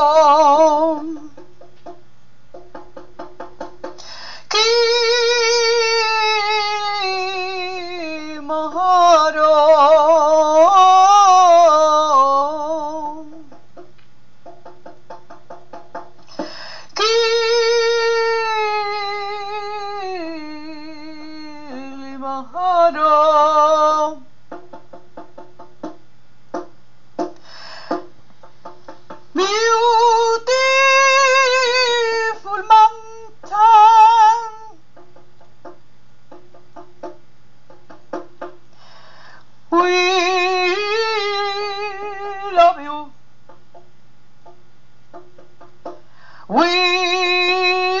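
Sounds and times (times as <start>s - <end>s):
woman singing with vibrato: 0.0s - 1.5s, 4.4s - 13.6s, 16.4s - 24.3s, 29.3s - 34.8s, 39.7s - 43.2s, 46.4s - 48.0s.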